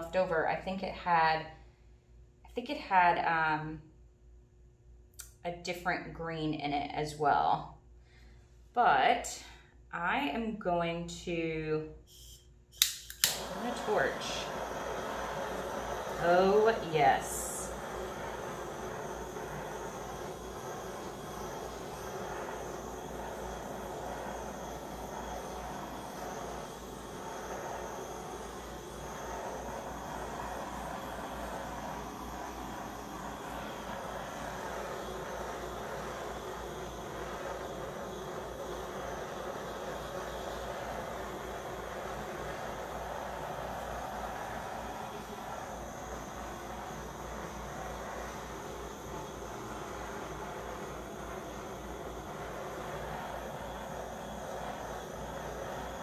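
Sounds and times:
butane torch flame hissing: 12.0s - 56.0s.

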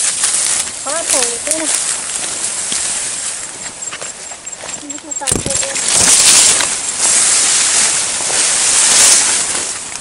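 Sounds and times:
stalks snapping: 0.0s - 3.0s
leaves rustling and brushing: 0.0s - 10.0s.

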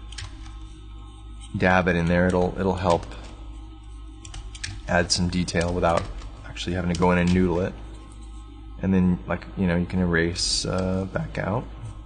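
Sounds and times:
low steady hum: 0.0s - 12.0s
person speaking: 1.5s - 3.4s, 4.7s - 8.0s, 8.8s - 11.8s.

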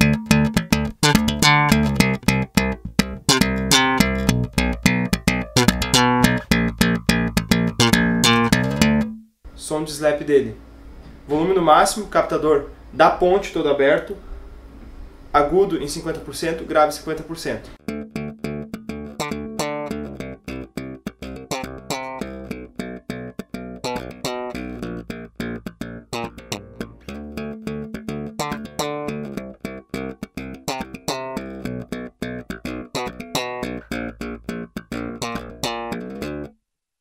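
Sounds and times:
slap electric bass: 0.0s - 9.2s, 17.8s - 36.5s.

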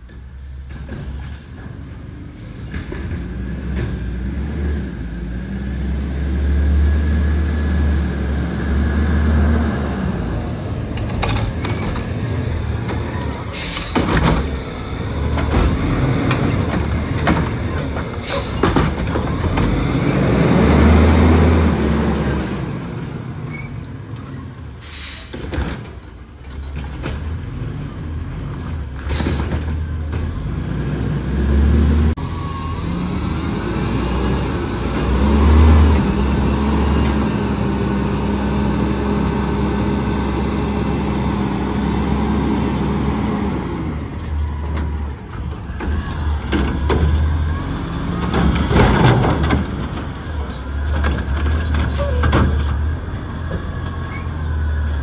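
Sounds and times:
diesel engine revving: 1.6s - 24.7s, 26.8s - 55.0s.

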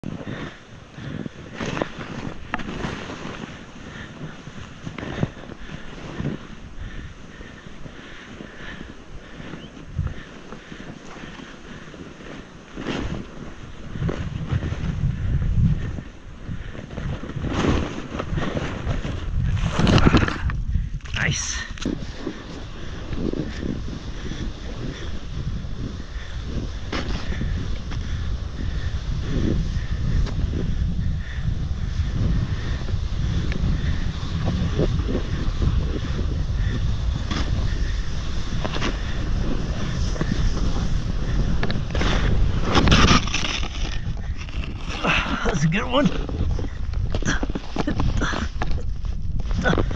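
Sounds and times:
snowboard scraping over snow: 0.0s - 49.9s
wind buffeting microphone: 0.0s - 49.9s.

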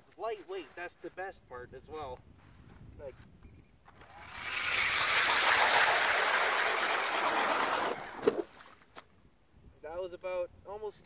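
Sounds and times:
ice auger drilling: 4.0s - 8.4s.

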